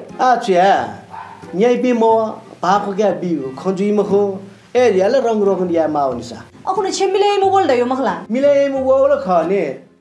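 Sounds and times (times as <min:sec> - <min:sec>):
woman speaking: 0:06.6 - 0:08.3.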